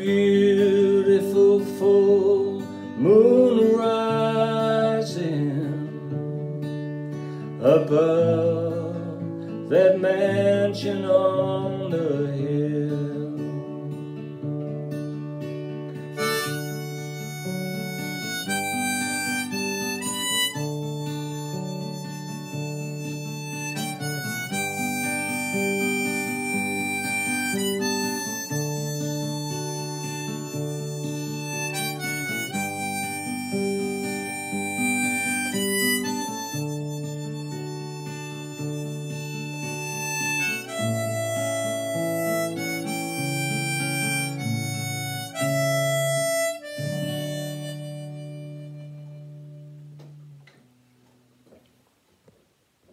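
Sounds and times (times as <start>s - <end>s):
harmonica melody: 0.0s - 50.4s
acoustic guitar accompaniment: 0.0s - 52.9s.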